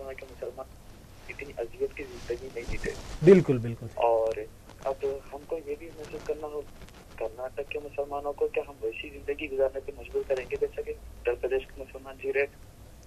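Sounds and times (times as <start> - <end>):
caller talking over telephone line: 0.0 - 0.7, 1.3 - 12.5.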